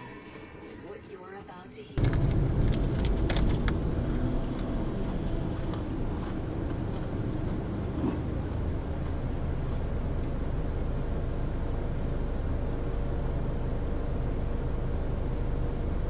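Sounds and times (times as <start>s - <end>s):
car road noise rumble: 2.0s - 16.0s.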